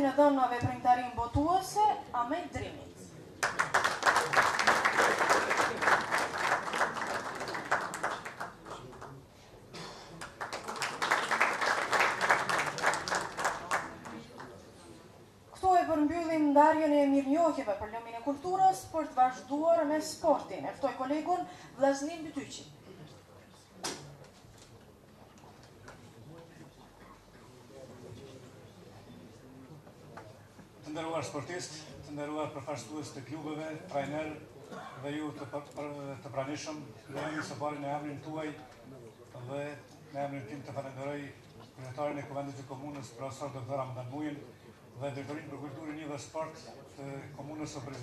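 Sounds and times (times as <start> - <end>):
faint murmur of voices: 0.0 - 48.0
audience applauding: 3.4 - 9.2, 10.2 - 14.6.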